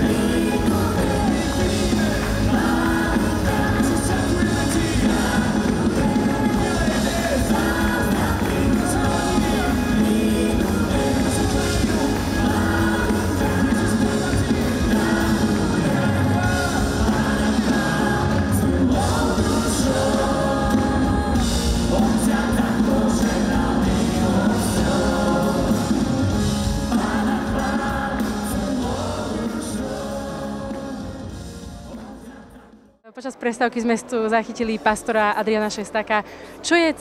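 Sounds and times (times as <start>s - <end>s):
electric guitar: 0.0s - 31.8s
worship band playing: 0.0s - 32.8s
singers singing: 0.0s - 33.0s
drums: 0.0s - 33.3s.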